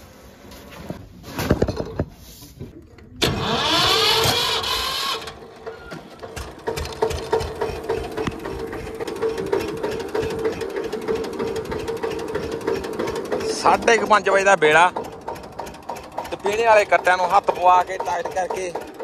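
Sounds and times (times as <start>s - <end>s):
tractor engine running: 3.1s - 19.0s
tractor engine starting: 3.1s - 19.0s.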